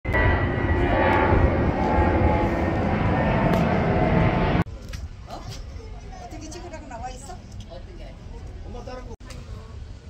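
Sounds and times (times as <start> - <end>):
loud mechanical rumble: 0.0 - 4.8.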